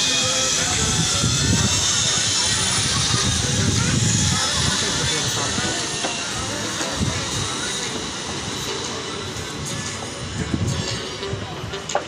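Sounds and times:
wind buffeting microphone: 0.5s - 8.2s.

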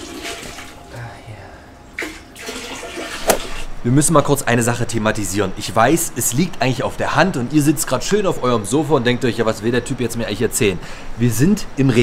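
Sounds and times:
water pouring into toilet bowl: 0.0s - 0.8s, 2.0s - 3.6s.

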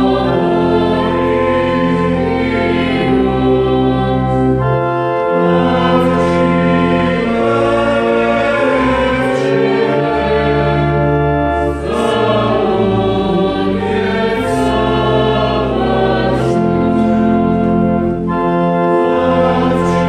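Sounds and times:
mixed choir singing: 0.0s - 20.0s
organ accompaniment: 0.0s - 20.0s.

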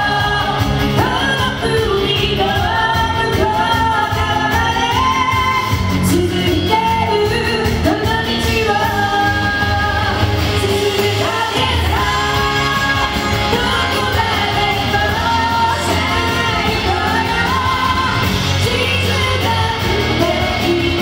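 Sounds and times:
pop backing music: 0.0s - 21.0s
woman singing into a microphone: 0.0s - 21.0s.

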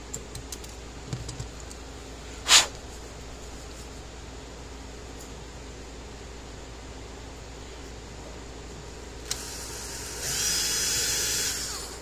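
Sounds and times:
cordless drill whining through plastic: 9.3s - 12.0s.

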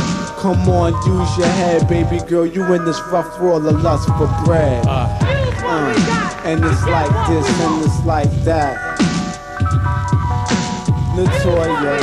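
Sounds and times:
held keyboard notes: 0.0s - 12.0s
deep kick and bass hits: 0.6s - 2.2s, 3.7s - 5.6s.

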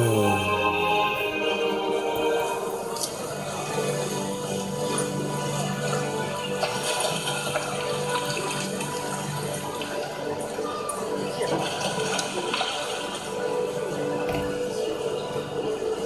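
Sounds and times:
music of long held chords: 0.0s - 16.0s.

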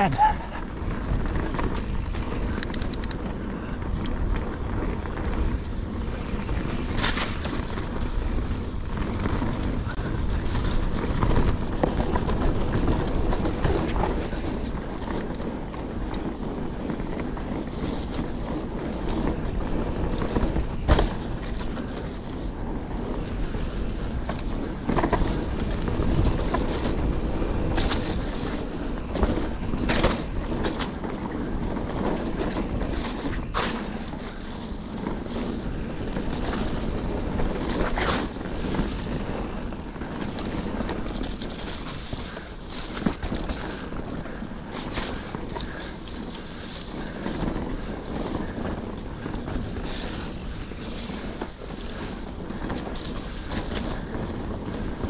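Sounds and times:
bike rattling: 0.0s - 55.0s
tyre noise on dirt: 0.0s - 55.0s
wind on microphone: 0.0s - 55.0s
bike knocking over bumps: 19.1s - 22.2s, 24.1s - 34.4s.

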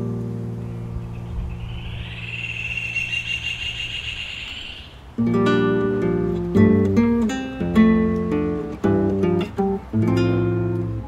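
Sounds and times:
high-pitched background tone: 0.9s - 5.1s
classical guitar strums: 5.1s - 11.0s.

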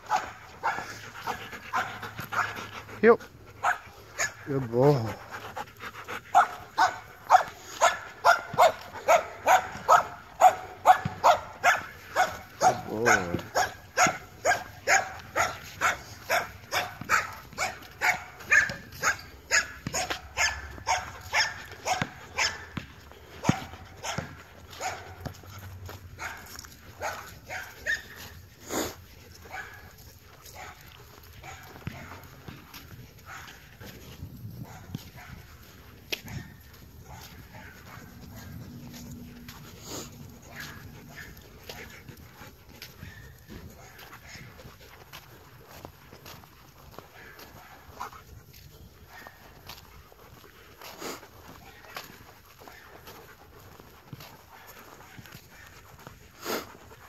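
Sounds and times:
dog panting: 0.0s - 57.0s.

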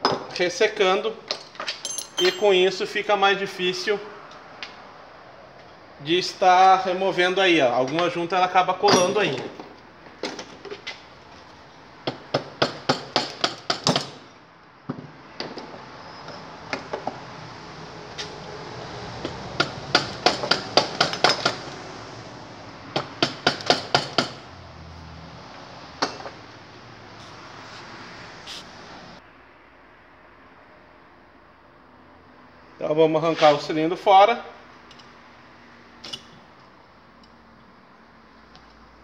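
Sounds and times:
sharp metal knocks: 1.8s - 2.7s, 8.9s - 9.6s, 19.6s - 21.6s, 22.9s - 24.4s.

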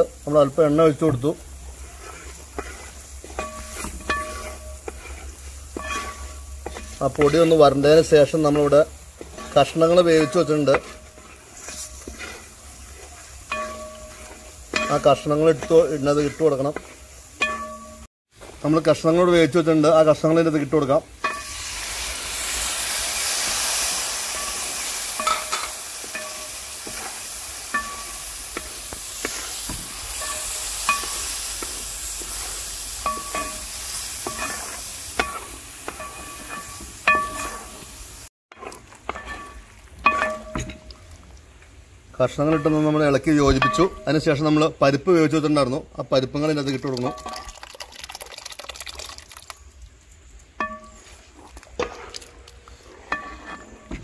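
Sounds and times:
wooden spatula scraping metal pan: 0.0s - 41.0s, 42.2s - 45.1s, 50.6s - 54.0s
steady hiss: 0.0s - 47.5s
vegetables sizzling: 0.0s - 54.0s.

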